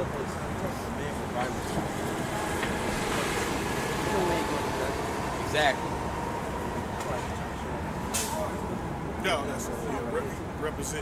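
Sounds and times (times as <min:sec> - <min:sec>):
city street traffic rumble: 0:00.0 - 0:11.0
bus air brakes hissing: 0:08.1 - 0:08.5.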